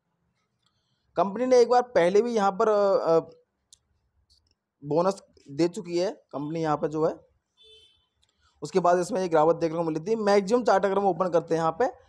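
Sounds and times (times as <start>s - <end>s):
man speaking: 1.2s - 3.3s, 4.8s - 7.2s, 8.6s - 12.0s.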